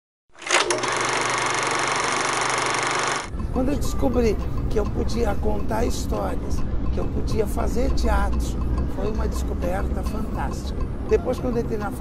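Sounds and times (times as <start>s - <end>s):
film projector whirring rattle: 0.4s - 3.3s.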